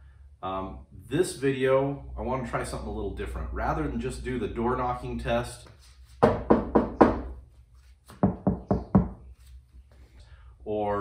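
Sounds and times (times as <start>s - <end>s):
fist knocking on sheet metal: 6.2s - 7.3s, 8.2s - 9.2s.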